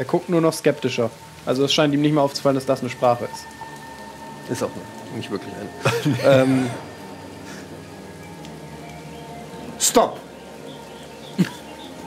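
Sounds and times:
faint held music tones: 0:00.0 - 0:12.0
steady rain: 0:00.0 - 0:12.0.

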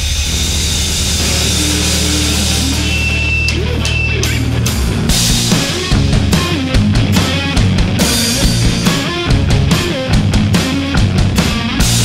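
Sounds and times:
bass guitar chord: 0:00.0 - 0:12.0
distorted electric guitar: 0:00.0 - 0:12.0
drum and cymbal hits: 0:00.0 - 0:12.0.

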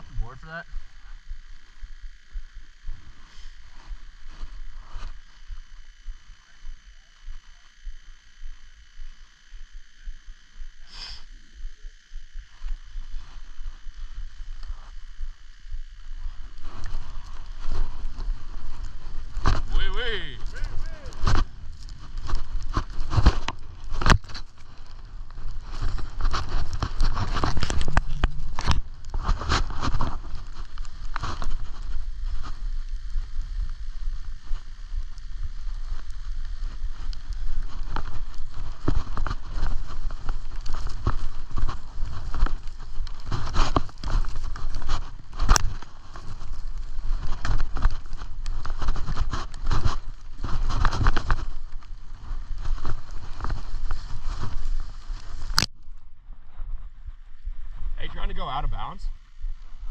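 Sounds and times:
wind rumbling on microphone: 0:11.9 - 0:59.9
skis scraping over snow: 0:16.1 - 0:55.7.

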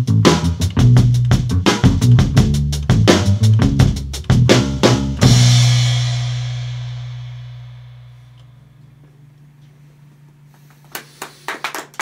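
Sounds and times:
low steady hum: 0:05.2 - 0:10.8
people clapping: 0:10.8 - 0:12.0.

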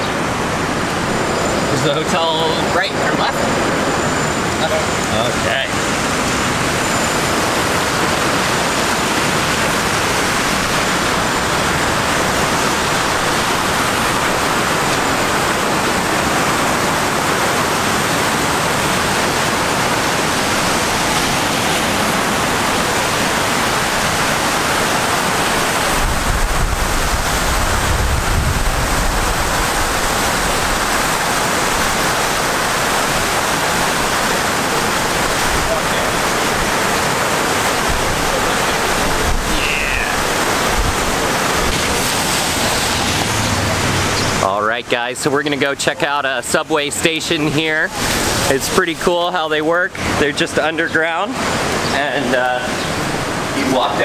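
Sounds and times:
fountain water splashing: 0:00.0 - 0:54.0.

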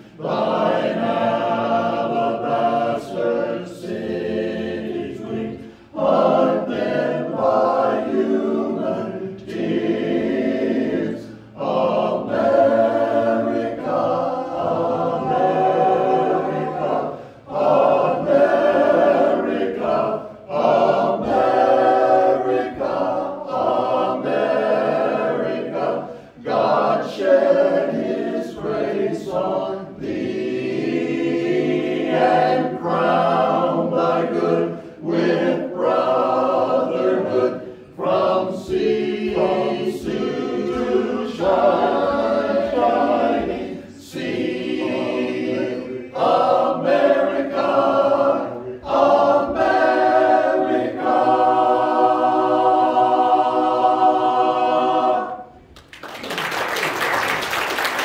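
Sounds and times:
men's chorus singing a cappella: 0:00.0 - 0:55.7.

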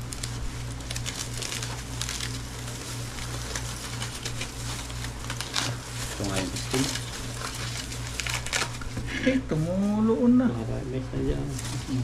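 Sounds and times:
aluminium foil crinkling: 0:00.0 - 0:10.3, 0:11.3 - 0:12.0
steady low hum: 0:00.0 - 0:12.0.

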